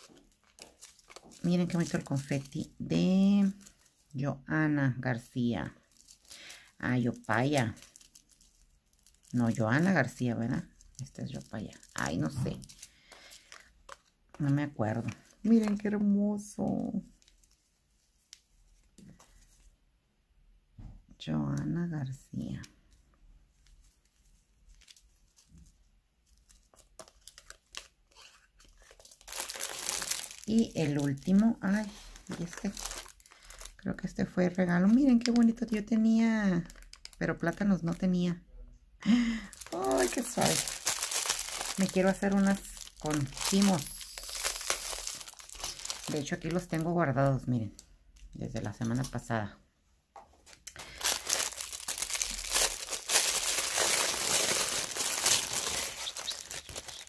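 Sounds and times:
plastic bags crinkling: 0:00.0 - 0:04.2, 0:05.4 - 0:19.2, 0:23.6 - 0:38.1, 0:39.1 - 0:49.2, 0:50.4 - 0:57.0.

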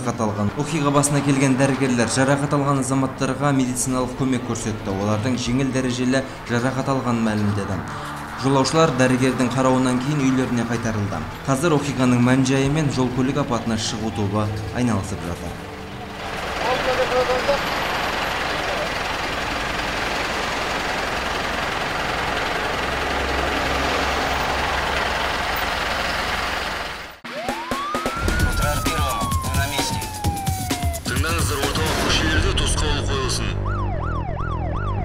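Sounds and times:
tow truck engine running: 0:00.0 - 0:27.2, 0:27.8 - 0:31.0
rhythmic music: 0:27.2 - 0:33.7
siren sound effect: 0:27.2 - 0:35.0.

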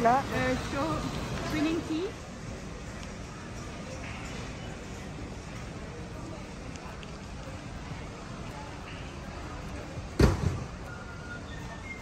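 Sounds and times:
warehouse store background noise: 0:00.0 - 0:12.0
loud thump: 0:10.2 - 0:10.7.

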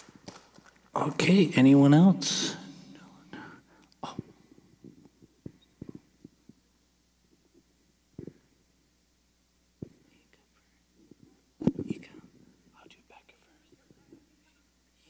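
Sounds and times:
faint low murmuring: 0:09.8 - 0:15.0.

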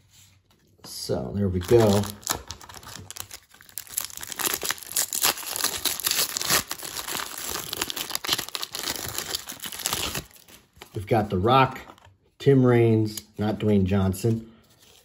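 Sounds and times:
foil wrapper crinkling: 0:01.5 - 0:11.0.

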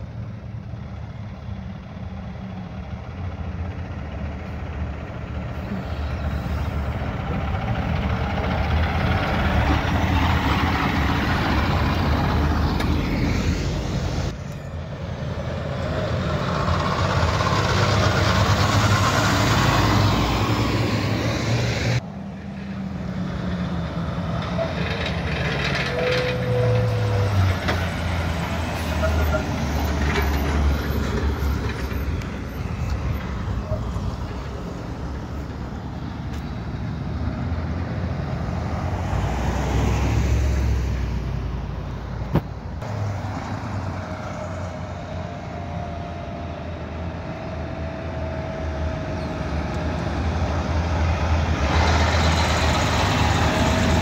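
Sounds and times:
diesel truck engines: 0:00.0 - 0:54.0.

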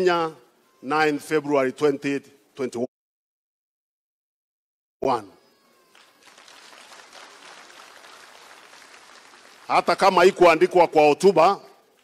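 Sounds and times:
audience applauding: 0:05.9 - 0:10.6.

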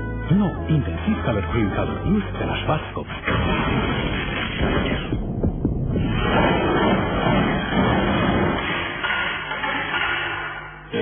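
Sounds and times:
low throbbing hum: 0:01.8 - 0:09.0.

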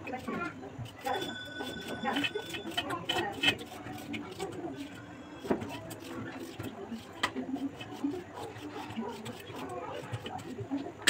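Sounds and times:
indistinct voices talking: 0:00.0 - 0:09.0.

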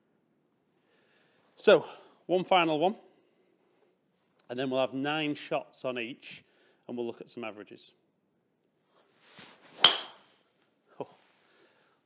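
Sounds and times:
golf club swish: 0:08.9 - 0:10.5
golf ball impact crack: 0:09.8 - 0:10.3.

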